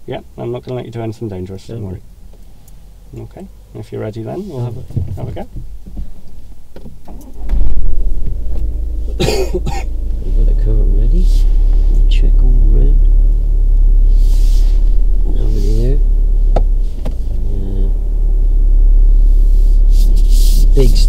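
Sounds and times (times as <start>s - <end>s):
car rumble inside cabin: 0.0s - 21.0s
person murmuring: 17.3s - 18.0s.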